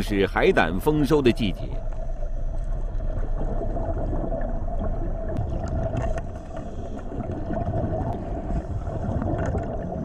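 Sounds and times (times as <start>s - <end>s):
underwater low rumble: 0.1s - 10.0s.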